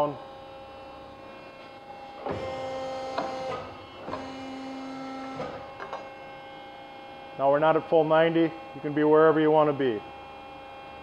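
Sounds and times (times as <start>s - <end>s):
hydraulic machine humming: 0.0s - 11.0s.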